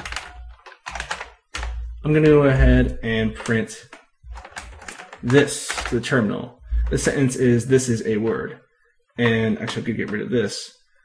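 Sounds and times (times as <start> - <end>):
computer keyboard typing: 0.0 - 7.3, 9.2 - 10.3.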